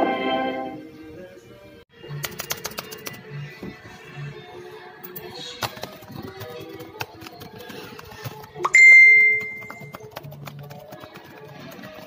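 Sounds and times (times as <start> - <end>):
faint music: 0.0 - 12.0
bright bell-like ding: 8.7 - 9.8.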